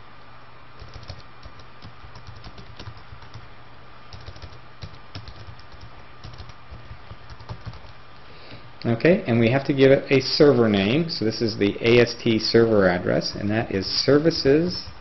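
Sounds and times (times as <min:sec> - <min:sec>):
steady low hum: 0:00.0 - 0:15.0
keyboard typing clicks: 0:00.8 - 0:03.4, 0:04.1 - 0:08.0.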